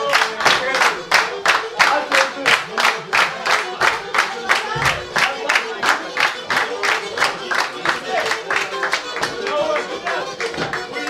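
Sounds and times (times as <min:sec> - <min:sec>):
people clapping in unison: 0:00.0 - 0:11.0.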